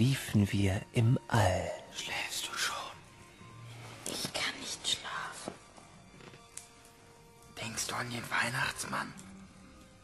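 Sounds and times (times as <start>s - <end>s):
person whispering: 1.8s - 3.0s, 4.0s - 5.6s.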